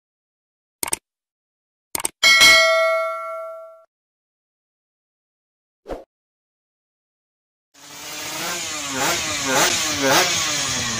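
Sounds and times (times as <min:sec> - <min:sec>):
motorcycle engine revving: 0:07.8 - 0:10.9.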